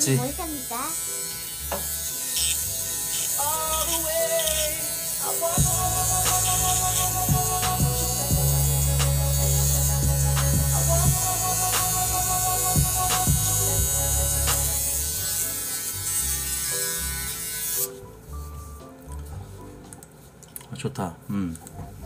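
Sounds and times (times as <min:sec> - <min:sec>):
electric shaver buzzing: 0:00.0 - 0:18.1.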